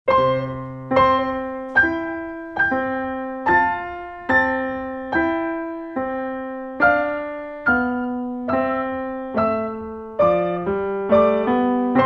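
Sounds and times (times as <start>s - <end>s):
slow piano notes: 0.1s - 12.0s.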